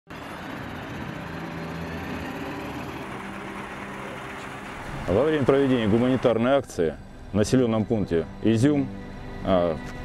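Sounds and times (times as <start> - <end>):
tyre and road noise: 0.1 - 6.9
military vehicles driving by: 0.1 - 10.0.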